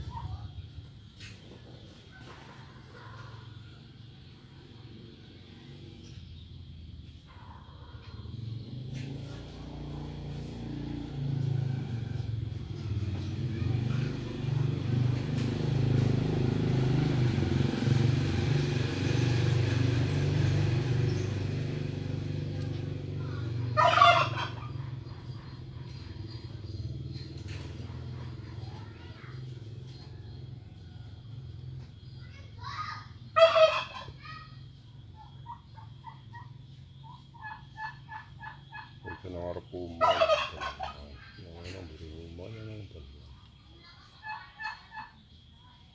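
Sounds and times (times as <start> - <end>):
turkey gobbling: 23.4 - 26.5, 33.3 - 34.4, 35.2 - 41.8, 43.9 - 45.2.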